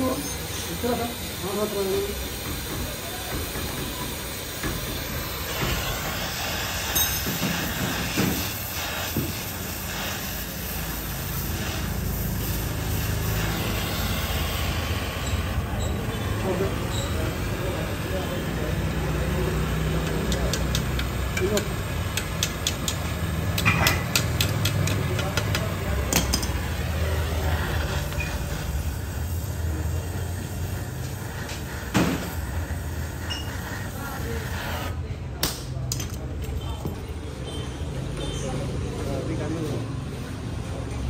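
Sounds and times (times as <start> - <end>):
welding torch hissing: 0.0 - 35.1
low workshop hum: 0.0 - 41.0
sharp metal knocks: 20.3 - 26.6.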